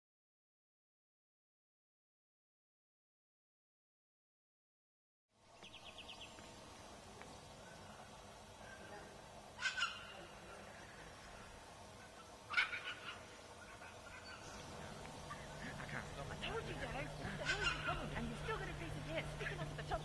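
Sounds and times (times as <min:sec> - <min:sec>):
loud bird calls: 0:05.6 - 0:20.0
bird trilling: 0:09.6 - 0:20.0.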